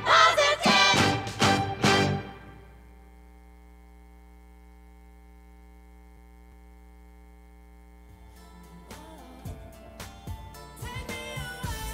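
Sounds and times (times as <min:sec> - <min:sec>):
electrical mains hum: 0:00.0 - 0:11.8.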